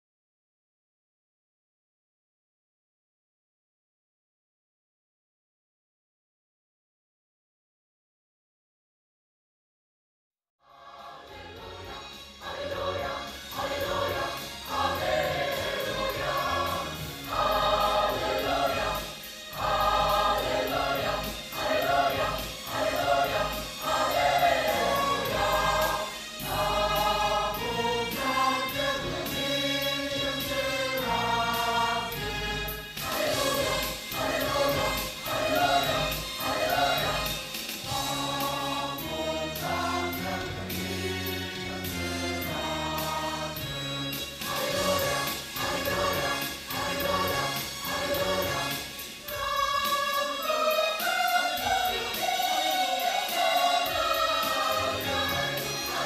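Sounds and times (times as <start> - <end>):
mixed choir singing gospel: 10.6 - 56.0.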